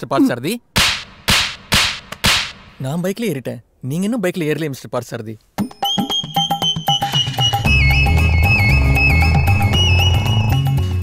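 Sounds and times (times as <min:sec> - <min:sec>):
sharp cracks with hissing tails: 0:00.8 - 0:02.8.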